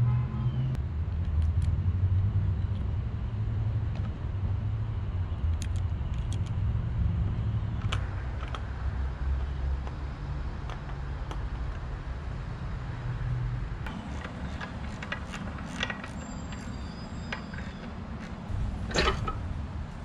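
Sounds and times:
metal parts clinking: 18.5 - 19.5
steady low rumble: 18.5 - 20.0.

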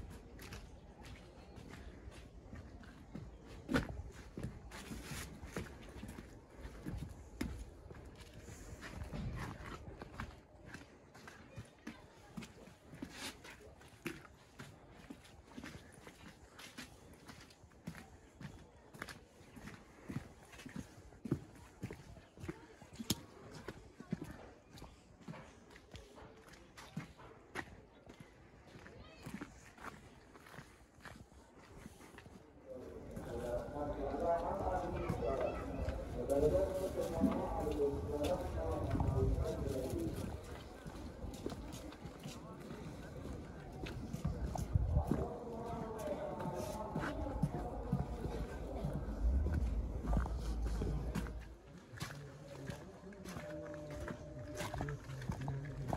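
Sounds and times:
footsteps on packed earth: 0.0 - 55.9
background voices: 32.7 - 55.9.

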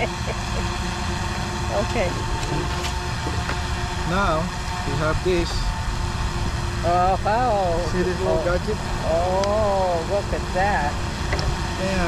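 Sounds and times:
steady low rumble: 0.0 - 12.0
faint voices talking: 4.1 - 5.7, 6.8 - 12.0.

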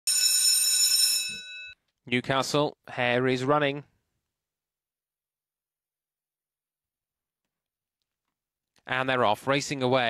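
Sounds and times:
bell ringing: 0.0 - 1.8.

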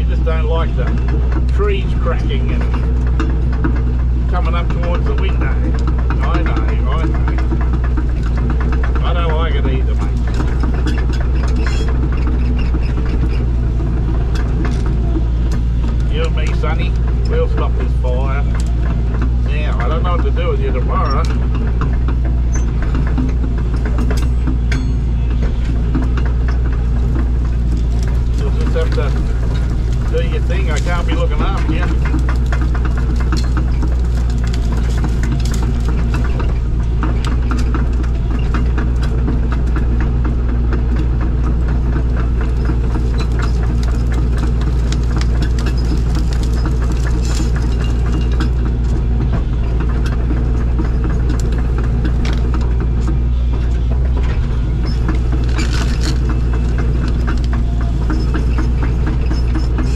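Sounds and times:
diesel engine deep drone: 0.0 - 59.9.

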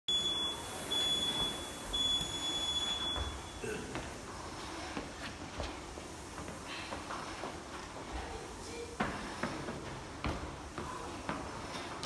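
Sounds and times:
interval timer beeps: 0.1 - 3.6
soft footfalls: 1.2 - 12.0.

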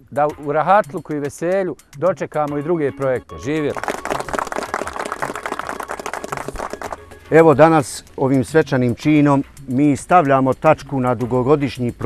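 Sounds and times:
crowd applauding: 3.7 - 7.0.

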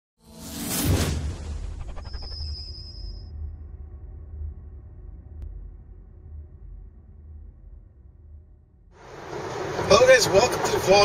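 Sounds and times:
whoosh: 0.2 - 3.7
low bass rumble: 3.2 - 9.9.

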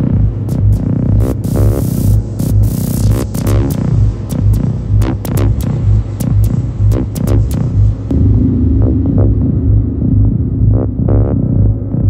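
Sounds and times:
pulsing synthesizer bass: 0.0 - 12.0.

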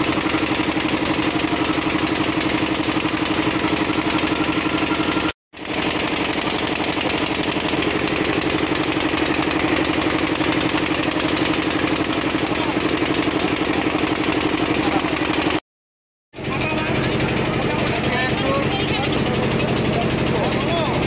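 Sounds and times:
small engine idling: 0.0 - 15.6, 16.4 - 21.0.

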